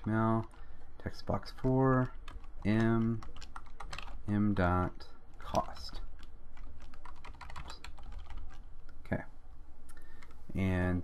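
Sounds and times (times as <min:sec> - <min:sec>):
computer keyboard typing: 0:00.0 - 0:04.5, 0:05.3 - 0:08.9, 0:10.0 - 0:10.4.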